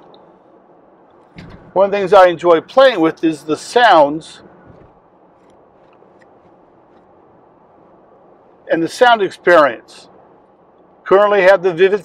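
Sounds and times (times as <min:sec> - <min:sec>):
road and tyre noise in car cabin: 0:00.0 - 0:12.0.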